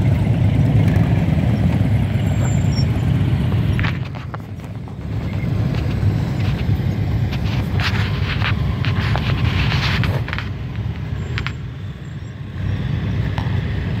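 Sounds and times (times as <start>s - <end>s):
vehicles passing slowly: 0.0s - 14.0s.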